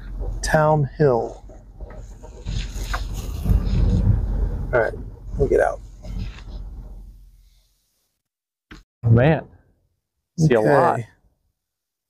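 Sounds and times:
car rolling over gravel: 0:00.0 - 0:07.2.

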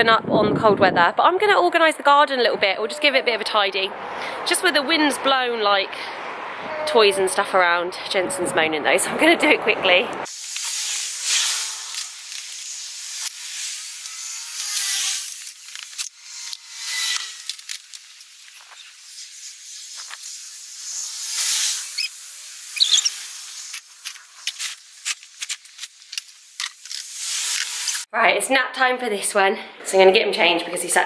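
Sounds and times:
wind gusts: 0:00.0 - 0:10.3.

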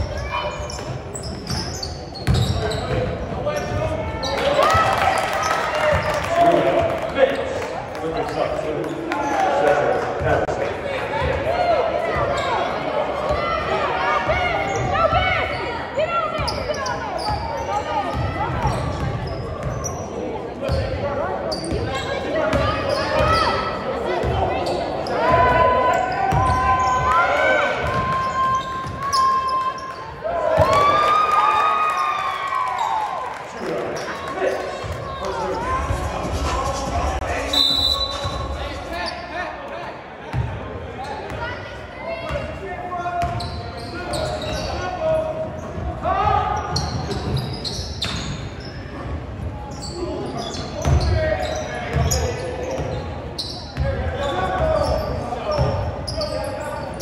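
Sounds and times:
sneaker squeaks on hardwood: 0:00.0 - 0:04.5, 0:16.3 - 0:25.4, 0:43.2 - 0:44.9, 0:46.6 - 0:49.0, 0:49.7 - 0:57.0
basketball bouncing on gym floor: 0:02.2 - 0:03.1
chatter of voices: 0:33.5 - 0:47.7.

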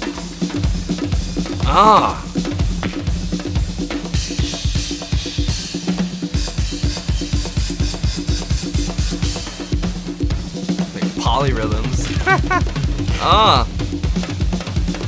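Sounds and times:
drum kit solo: 0:00.0 - 0:15.0.

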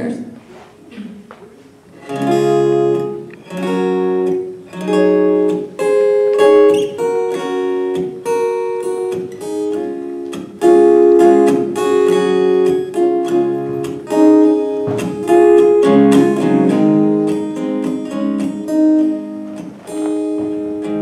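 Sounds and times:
acoustic guitar strumming chords: 0:01.8 - 0:21.0.

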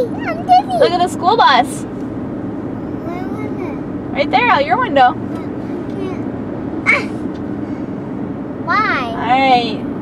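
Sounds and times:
car cabin road and engine noise: 0:00.0 - 0:10.0.

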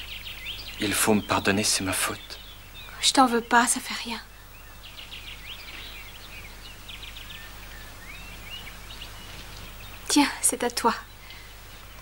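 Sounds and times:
bird chirps and trills: 0:00.0 - 0:12.0.

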